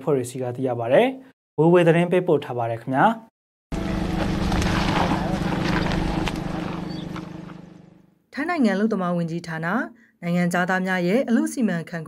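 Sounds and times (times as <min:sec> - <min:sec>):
motor humming: 0:03.7 - 0:08.0.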